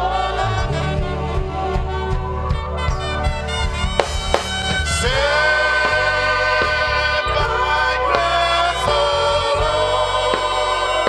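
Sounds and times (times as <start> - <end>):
band accompaniment: 0.0 - 11.0
woman and man singing hymn: 5.0 - 11.0.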